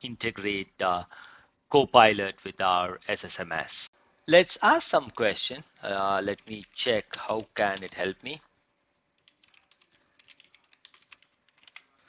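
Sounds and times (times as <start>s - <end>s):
typing on computer keyboard: 9.2s - 11.9s.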